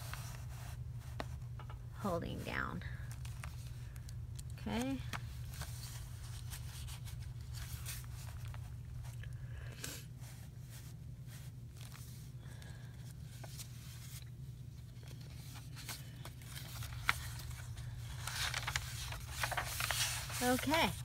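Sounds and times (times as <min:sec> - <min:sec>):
paper rustling and crinkling: 0:00.0 - 0:01.6, 0:03.0 - 0:09.4, 0:10.1 - 0:21.0
steady low hum: 0:00.0 - 0:21.0.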